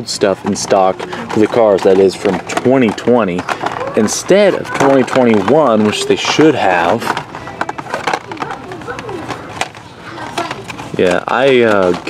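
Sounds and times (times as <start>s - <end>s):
faint voices: 0.0s - 12.0s
plastic cards clicking and clattering: 0.2s - 12.0s.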